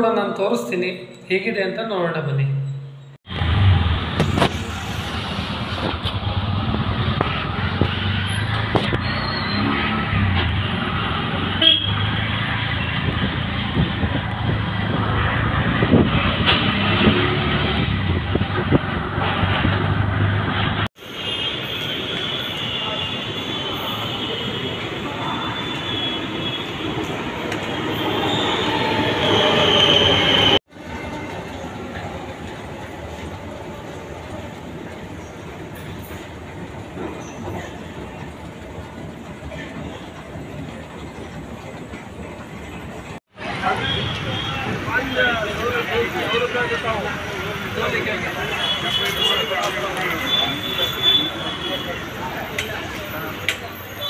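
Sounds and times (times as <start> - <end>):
metro train at platform: 2.6 - 54.0
street traffic rumble: 3.0 - 54.0.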